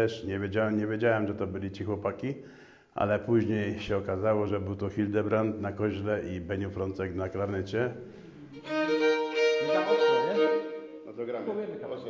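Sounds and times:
fiddle playing folk tune: 0:08.5 - 0:11.2
bagpipe drone: 0:08.6 - 0:11.1.

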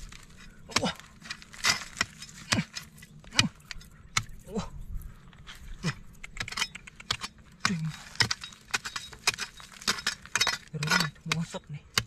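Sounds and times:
stone chips rattling: 0:07.6 - 0:11.2.

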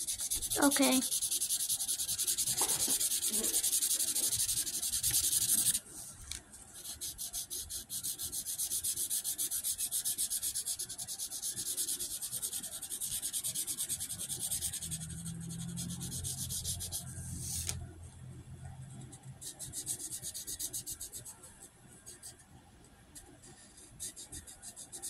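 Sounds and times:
rapid rubbing or scratching: 0:00.0 - 0:05.8, 0:06.8 - 0:17.8
low steady hum: 0:14.3 - 0:20.0.

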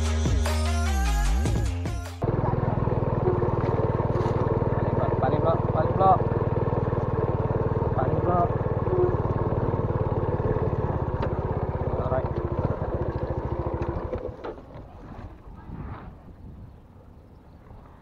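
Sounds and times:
motor scooter engine running: 0:02.2 - 0:15.0.

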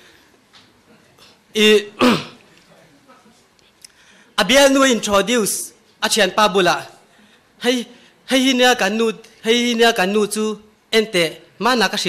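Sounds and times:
man clearing his throat: 0:01.8 - 0:02.4.

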